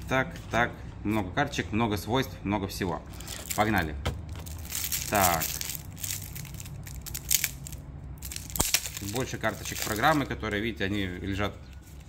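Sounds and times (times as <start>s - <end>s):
cellophane crinkling as torn off: 3.1s - 10.3s
sharp snaps of wrapping: 4.4s - 10.3s.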